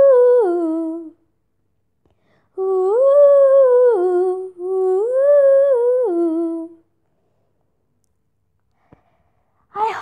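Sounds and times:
girl singing wordless melody: 0:00.0 - 0:01.4, 0:02.2 - 0:07.0, 0:09.7 - 0:10.0.

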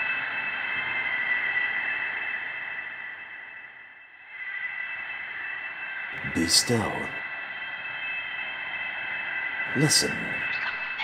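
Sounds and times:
high even whine: 0:00.0 - 0:11.0.

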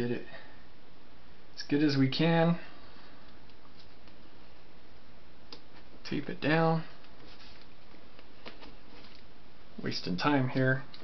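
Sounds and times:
low hiss of room tone: 0:00.0 - 0:11.0.

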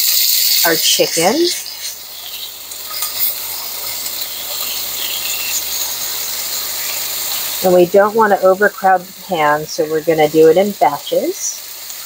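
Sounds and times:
chicken sizzling in frying pan oil: 0:00.0 - 0:12.0.

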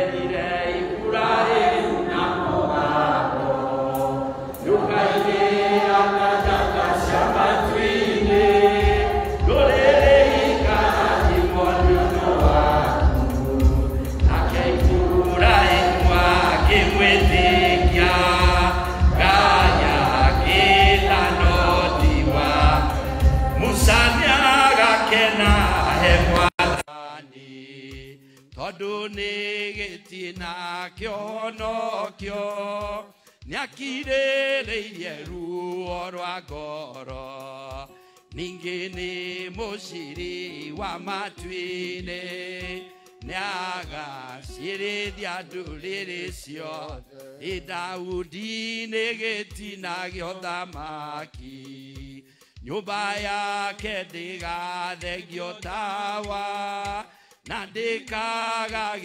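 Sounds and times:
man leading singing: 0:00.0 - 0:03.4, 0:04.0 - 0:59.0
congregation singing a hymn: 0:00.0 - 0:28.2, 0:38.4 - 0:49.3
steady low beat: 0:03.9 - 0:26.8.

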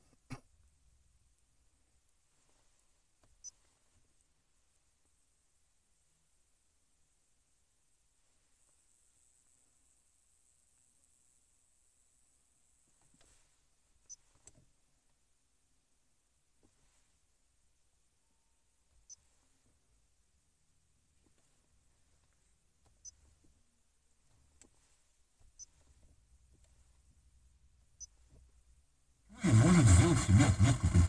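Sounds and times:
car radio broadcast with voice: 0:29.3 - 0:31.0.

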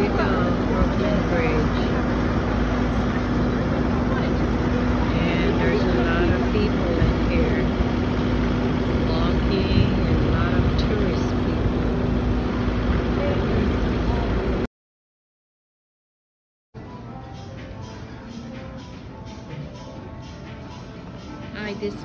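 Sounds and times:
chatter of passers-by: 0:00.0 - 0:14.7
low hum: 0:00.0 - 0:14.7
traffic noise: 0:00.0 - 0:14.7.

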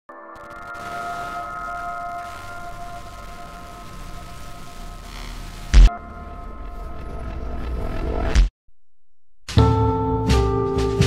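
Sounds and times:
low rumbling drone: 0:00.8 - 0:08.5.

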